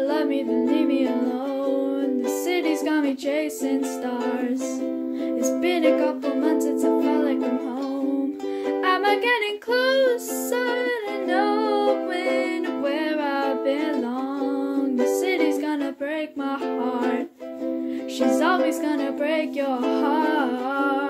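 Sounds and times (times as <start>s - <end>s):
girl singing: 0.0s - 21.0s
ukulele strumming chords: 0.0s - 21.0s.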